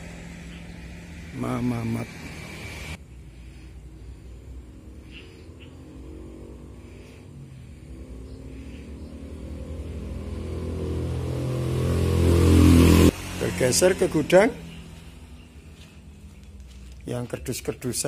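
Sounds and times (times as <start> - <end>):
vehicle engine running: 0.0 - 18.0.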